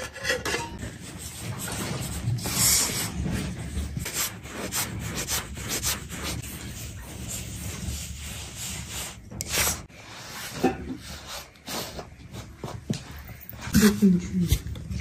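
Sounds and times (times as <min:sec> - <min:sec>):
hands rubbing flour in bowl: 0:00.8 - 0:13.0.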